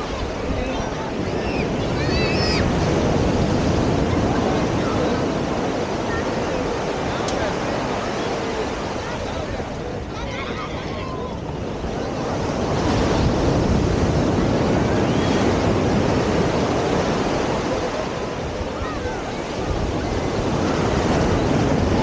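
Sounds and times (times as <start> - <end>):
surf breaking on sand: 0.0 - 22.0
wind buffeting microphone: 0.0 - 22.0.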